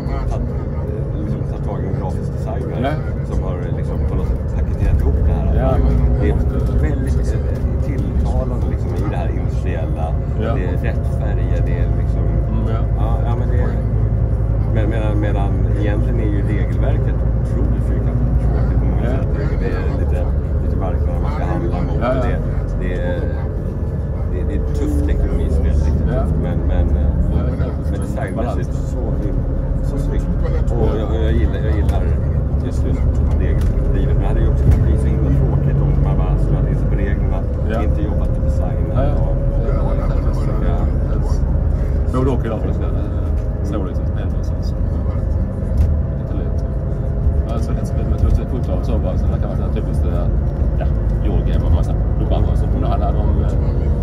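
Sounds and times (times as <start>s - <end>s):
bus engine and road rumble: 0.0s - 54.0s
engine whine rising and falling: 0.0s - 54.0s
passengers talking: 0.0s - 54.0s.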